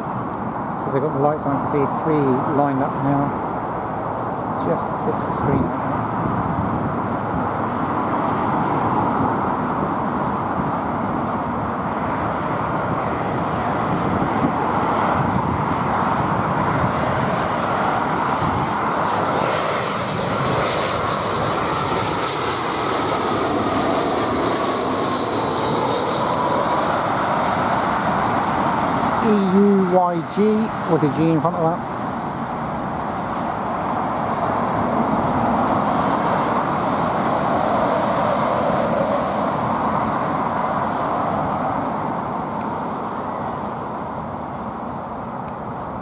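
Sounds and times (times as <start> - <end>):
jet airliner passing overhead: 0.0 - 46.0
jet engine whine falling in pitch: 0.0 - 46.0.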